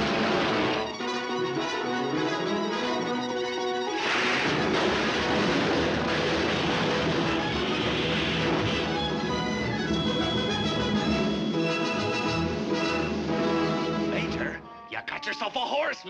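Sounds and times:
orchestral cartoon music: 0.0s - 16.0s
dense noisy sound effect: 4.0s - 9.0s.

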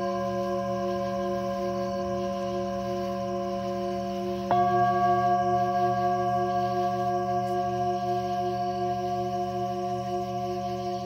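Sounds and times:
singing bowl ringing: 0.0s - 11.0s.

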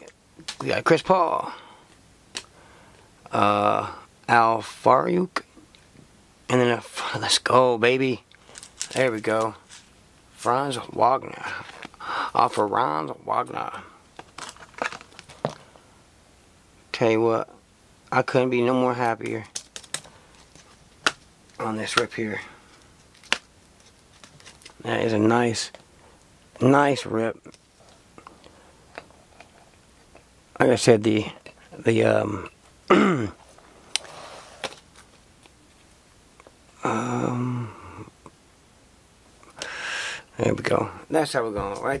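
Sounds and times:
trading cards rustling: 8.4s - 9.9s, 14.2s - 15.7s, 19.2s - 25.0s, 33.9s - 35.6s
cards tapping: 19.5s - 22.2s, 23.1s - 24.8s.

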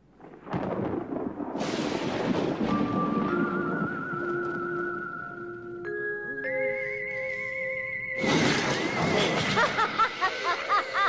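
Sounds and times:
rain hiss: 0.0s - 5.8s
thunder rumbling: 0.0s - 5.8s
eerie music with wavering tone: 3.2s - 11.0s.

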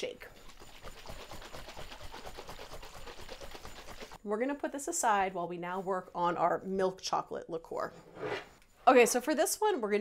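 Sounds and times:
liquid sloshing in shaken bottle: 0.2s - 4.2s.

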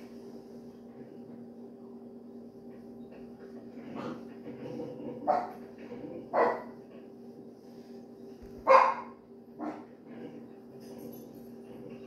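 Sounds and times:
dog barking: 6.3s - 6.7s, 8.6s - 9.8s.

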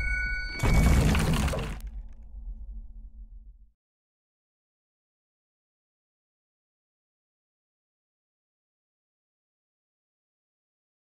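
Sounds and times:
glassy shattering burst: 0.6s - 1.8s
low rumble: 0.6s - 3.7s.

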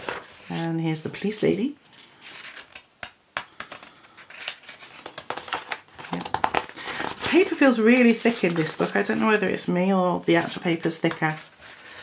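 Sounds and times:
sharp clicks and flaps of pages: 2.4s - 8.7s
paper rustling: 3.6s - 9.6s, 10.4s - 12.0s.

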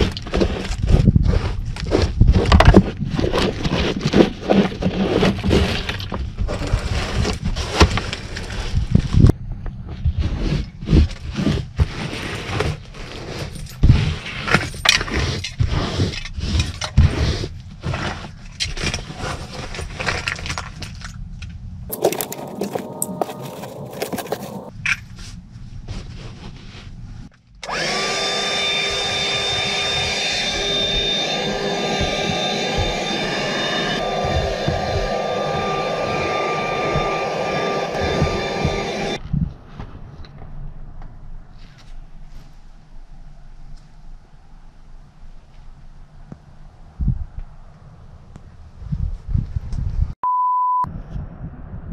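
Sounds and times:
scrapes and rustles of debris: 0.0s - 27.6s
small vacuum motor whining: 27.6s - 39.2s.

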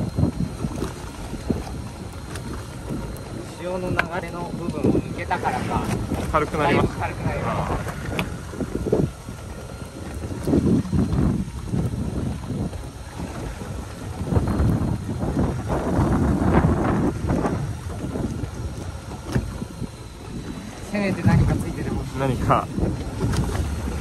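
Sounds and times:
wind gusting across microphone: 0.0s - 24.0s.

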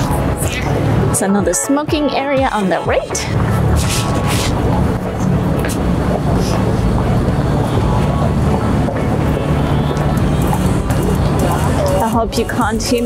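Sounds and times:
city street rumble: 0.0s - 13.0s.

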